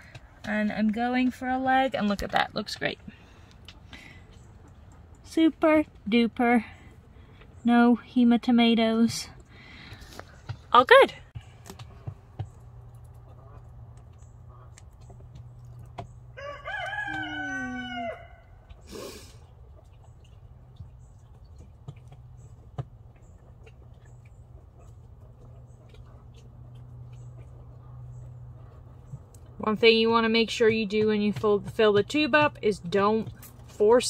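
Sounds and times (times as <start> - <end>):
rooster crowing: 16.4 - 18.6.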